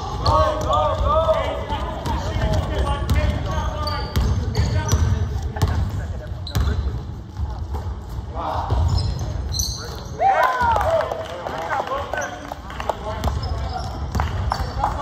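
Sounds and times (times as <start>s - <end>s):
sneaker squeaks: 0.0s - 1.2s, 2.1s - 8.0s, 8.6s - 10.2s, 12.1s - 12.4s, 13.2s - 14.8s
basketball bouncing on hardwood floor: 0.2s - 5.9s.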